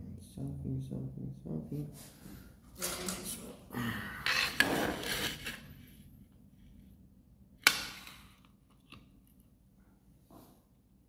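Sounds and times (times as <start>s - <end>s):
person sighing: 3.7s - 4.6s.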